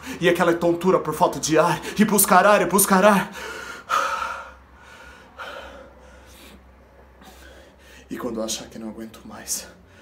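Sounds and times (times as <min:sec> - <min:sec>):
man gasping for air: 0:03.3 - 0:08.1.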